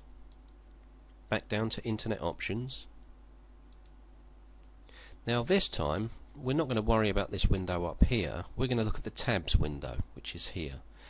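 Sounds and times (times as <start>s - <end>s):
low steady hiss: 0.0s - 11.0s
computer mouse clicks: 0.3s - 0.8s, 3.7s - 4.0s.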